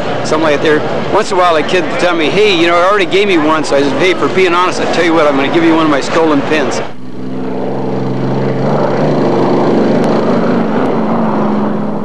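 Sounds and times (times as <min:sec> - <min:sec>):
racing boat engine drone: 0:00.0 - 0:12.0.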